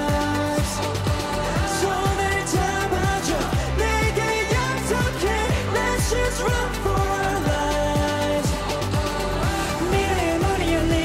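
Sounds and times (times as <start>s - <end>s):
drum beat and bass: 0.0s - 11.0s
male group singing: 0.0s - 11.0s.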